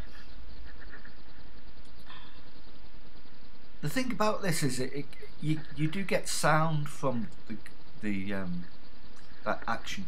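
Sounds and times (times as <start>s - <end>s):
low hum: 0.0s - 10.0s
person speaking: 3.8s - 8.7s.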